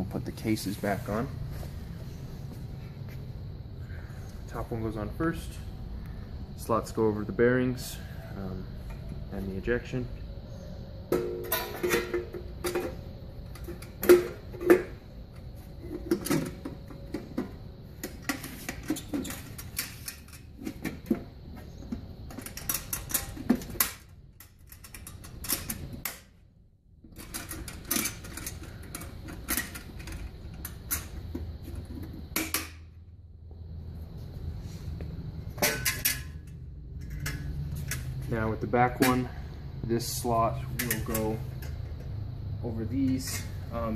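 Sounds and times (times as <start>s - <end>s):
metal panels clicking and rattling: 11.1s - 15.1s, 15.8s - 26.4s, 27.1s - 32.9s, 35.6s - 39.4s, 40.5s - 42.1s.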